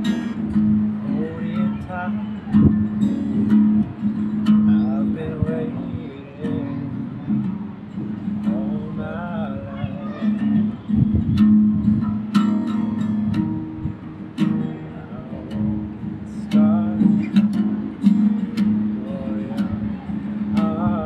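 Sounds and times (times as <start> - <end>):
acoustic guitar strumming: 0.0 - 21.0
person singing: 4.8 - 7.3, 18.8 - 21.0.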